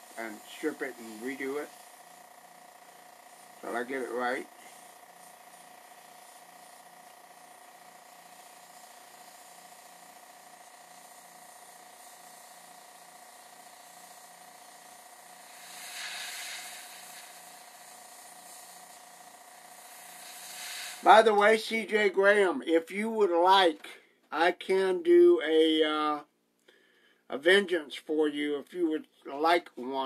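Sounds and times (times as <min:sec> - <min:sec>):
airbrush spraying: 0:00.0 - 0:21.4.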